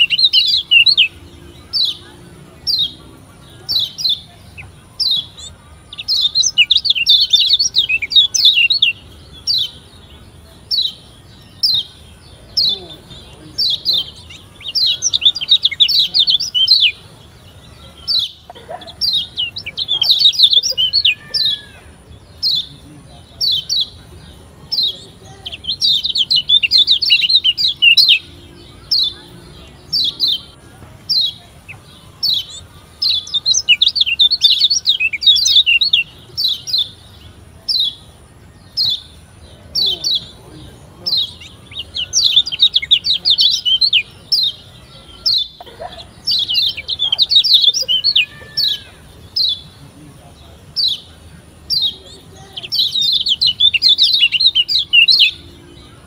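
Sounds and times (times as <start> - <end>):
bird singing high thin chirps: 0.0 - 49.9, 50.6 - 56.0.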